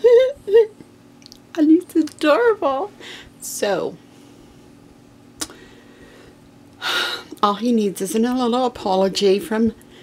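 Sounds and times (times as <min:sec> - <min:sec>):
woman speaking: 0:01.5 - 0:04.0, 0:07.3 - 0:09.8.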